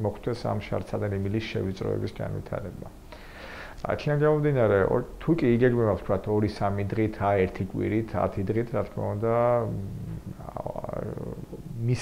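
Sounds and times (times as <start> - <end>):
man speaking: 0.0 - 2.9, 3.8 - 12.0
man humming hesitation sound: 9.3 - 12.0.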